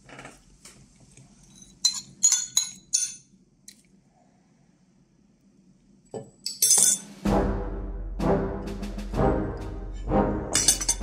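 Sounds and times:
metal spoon clinking ceramic bowl: 1.8 - 3.3, 6.5 - 7.1, 10.6 - 11.0
music with heavy bass: 7.2 - 11.0.

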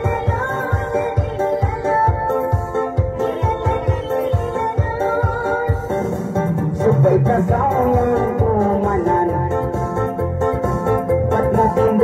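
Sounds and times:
amplified instrumental music: 0.0 - 12.0.

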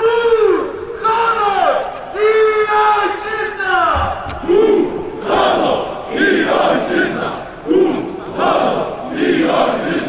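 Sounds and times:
crowd of men chanting: 4.0 - 10.0.

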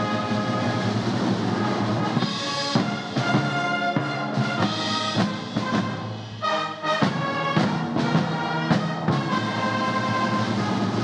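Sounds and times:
military band held chord: 0.0 - 11.0.

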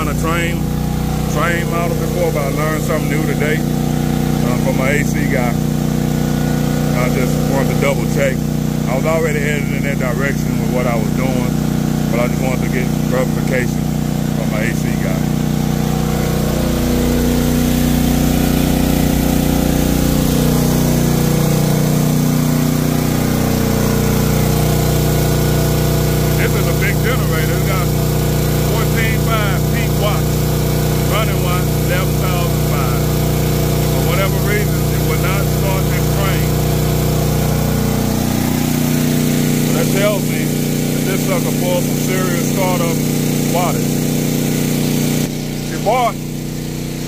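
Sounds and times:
air conditioner compressor and fan: 0.0 - 47.0
generator engine running: 0.0 - 47.0.

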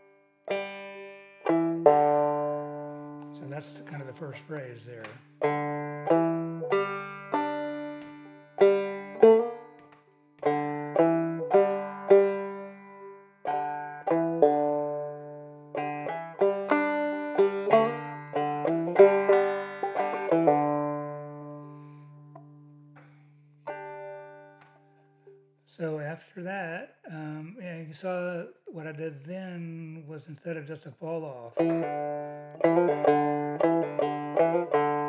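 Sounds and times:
banjo picking: 0.0 - 26.0, 31.2 - 35.0.

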